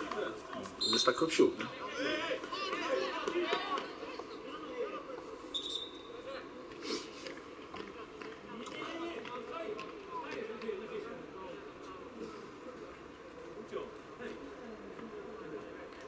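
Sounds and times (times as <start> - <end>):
people calling and murmuring: 0.0 - 16.0.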